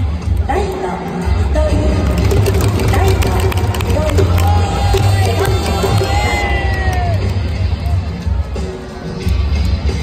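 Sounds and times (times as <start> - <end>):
crowd: 0.0 - 10.0
music with heavy bass: 1.8 - 10.0.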